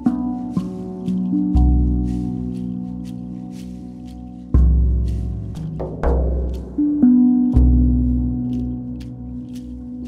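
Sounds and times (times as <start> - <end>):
deep drum beat: 0.0 - 10.0
steel tongue drum ringing notes: 0.0 - 10.0.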